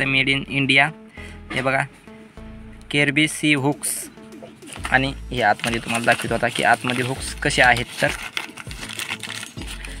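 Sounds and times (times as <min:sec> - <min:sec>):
paper rustling: 0:04.7 - 0:10.0.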